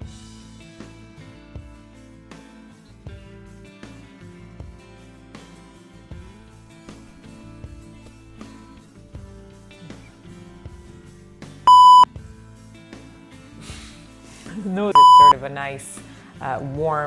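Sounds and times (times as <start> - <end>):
electronic bleep tone: 11.7 - 12.0, 15.0 - 15.3.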